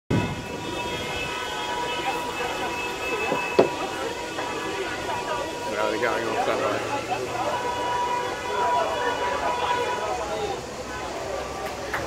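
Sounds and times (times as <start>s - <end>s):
car horns blaring together: 0.1s - 11.2s.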